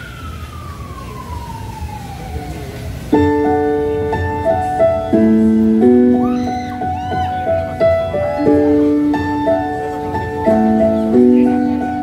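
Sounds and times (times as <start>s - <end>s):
siren tone sliding down: 0.0s - 3.0s.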